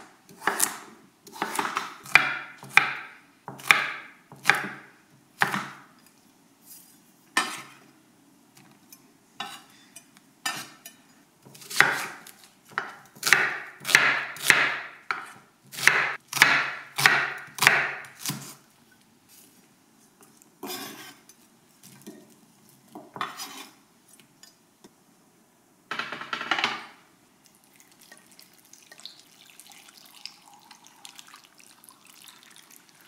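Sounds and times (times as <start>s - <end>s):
knife chopping on cutting board: 0.3s - 5.8s, 11.5s - 18.6s.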